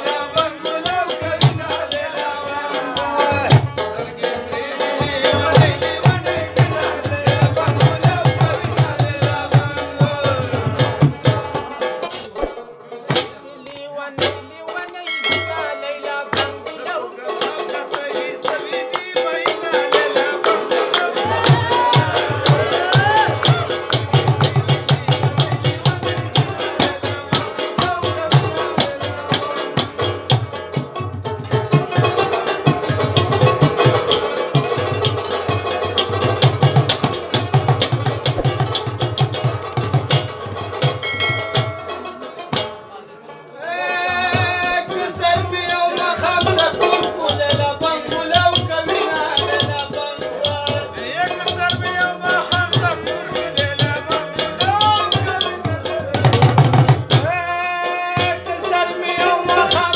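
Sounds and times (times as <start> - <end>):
fast hand drumming on clay-pot drum: 0.0 - 13.4, 16.2 - 42.7, 44.3 - 59.9
person singing: 0.0 - 30.2, 43.5 - 59.9
deep drum strokes: 38.0 - 40.2.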